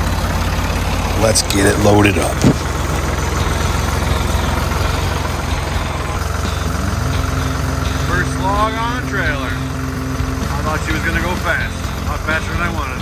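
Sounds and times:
tractor engine running: 0:00.0 - 0:13.0.

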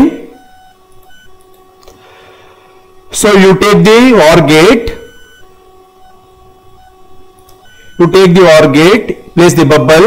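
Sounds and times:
faint electrical tones: 0:00.0 - 0:10.0.

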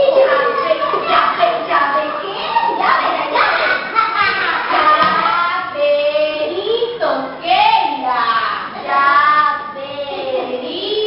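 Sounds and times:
children singing: 0:00.0 - 0:05.8, 0:08.1 - 0:11.0.

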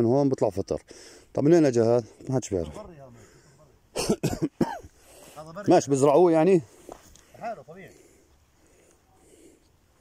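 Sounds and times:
man coughing: 0:03.9 - 0:04.9.

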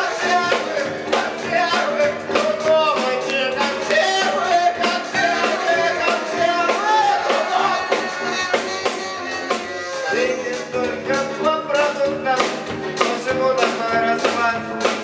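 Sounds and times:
drum kit steady beat: 0:00.0 - 0:15.0
electric guitars: 0:00.0 - 0:15.0
keyboard: 0:00.0 - 0:15.0.

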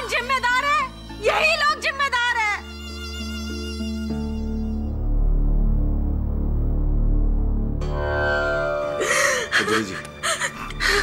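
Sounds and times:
woman crying and sobbing: 0:09.0 - 0:11.0.

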